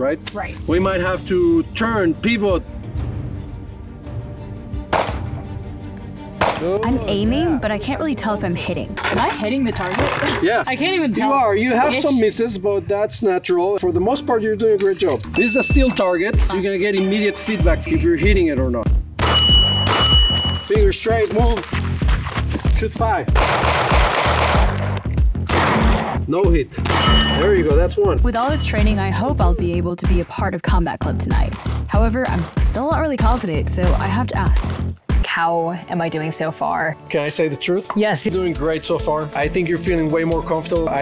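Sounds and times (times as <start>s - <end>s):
background music: 0.0s - 41.0s
pistol shot: 4.9s - 5.3s, 6.4s - 6.6s, 23.4s - 24.9s, 25.5s - 26.2s, 26.8s - 27.2s.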